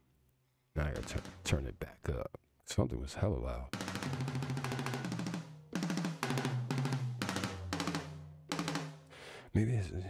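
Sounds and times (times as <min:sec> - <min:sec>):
fast tom drum rolls: 0:00.9 - 0:01.6, 0:03.8 - 0:09.1.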